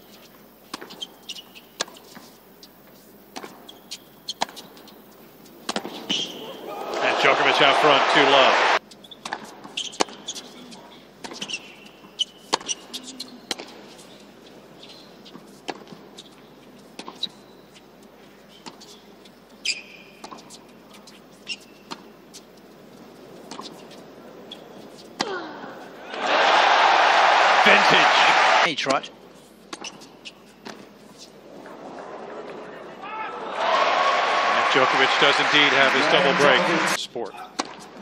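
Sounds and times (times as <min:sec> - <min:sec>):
shoe squeaks on court: 0:00.0 - 0:02.4, 0:03.0 - 0:05.1, 0:05.7 - 0:06.6, 0:08.9 - 0:22.5, 0:23.5 - 0:25.2, 0:29.7 - 0:31.4
racket striking tennis ball: 0:05.6 - 0:06.4, 0:09.2 - 0:10.5, 0:12.4 - 0:13.8
crowd cheering and applause: 0:06.6 - 0:08.8, 0:26.0 - 0:28.7, 0:31.9 - 0:37.0.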